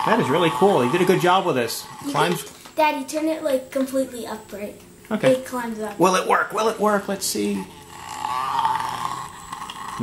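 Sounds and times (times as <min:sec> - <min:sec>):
toy robot vibration motor buzzing: 0:00.0 - 0:04.6, 0:06.8 - 0:10.0.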